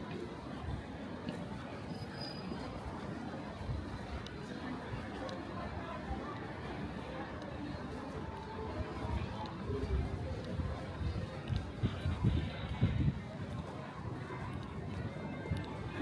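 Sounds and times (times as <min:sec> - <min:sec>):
indistinct chatter: 0:00.0 - 0:16.0.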